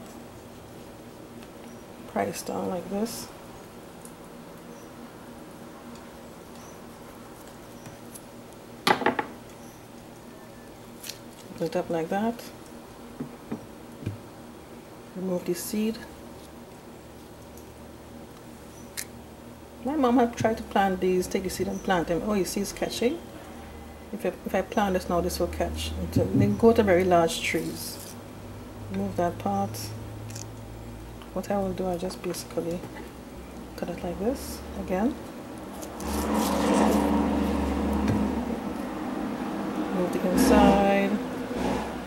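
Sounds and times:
steady low hum: 0.0 - 42.0
knife cutting avocado: 35.7 - 37.2.

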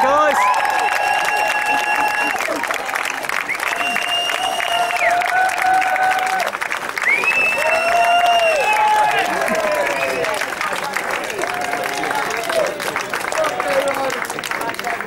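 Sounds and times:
crowd applauding: 0.0 - 15.0.

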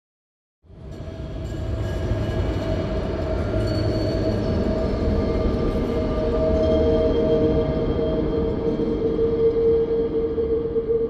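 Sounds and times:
ambient drone with held tones: 2.0 - 11.0.

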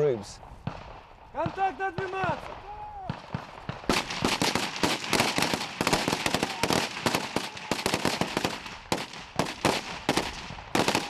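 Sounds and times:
assault rifles firing: 0.6 - 11.0.

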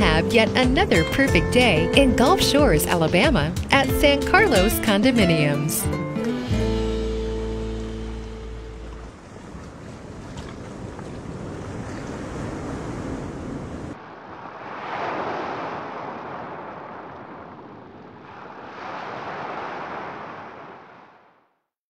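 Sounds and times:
ocean surf washing: 7.4 - 21.5
waves swelling and receding: 7.5 - 21.6.

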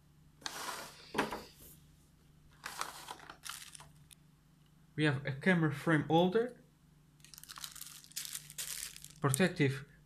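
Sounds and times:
plastic bag crinkling: 2.6 - 4.2, 7.2 - 9.5.

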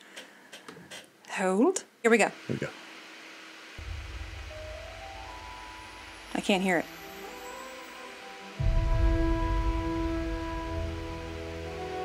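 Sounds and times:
deep low rumble: 3.8 - 6.9
sustained chord: 3.8 - 12.0.

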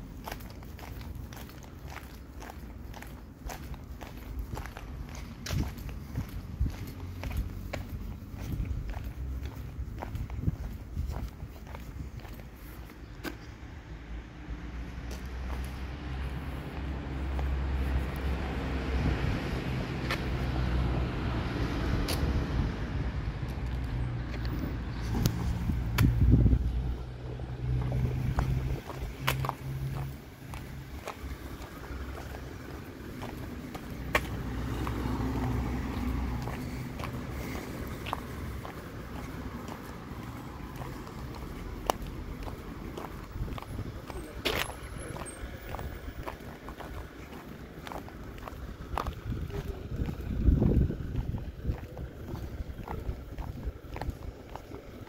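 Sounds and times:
distant traffic: 0.0 - 55.0
vehicle engine humming: 0.0 - 55.0.

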